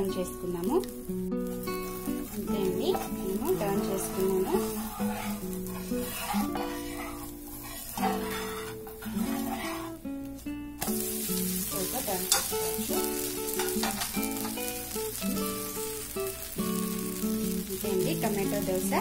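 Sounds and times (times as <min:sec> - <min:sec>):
dosa sizzling on a hot pan: 0:00.0 - 0:19.0
plucked background music: 0:00.0 - 0:19.0.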